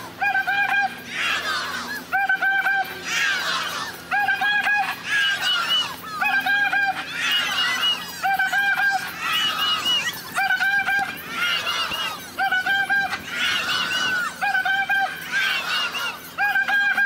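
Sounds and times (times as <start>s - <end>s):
crowd cheering and shouting: 0.0s - 17.0s.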